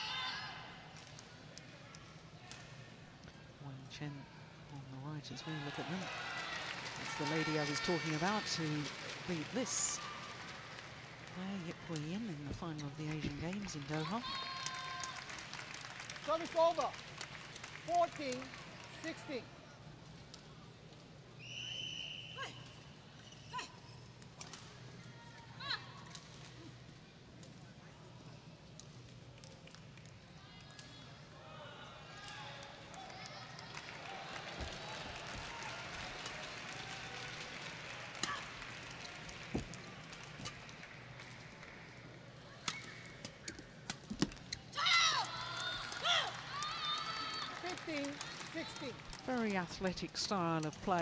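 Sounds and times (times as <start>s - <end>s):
crowd shouting and cheering: 44.7s - 49.0s.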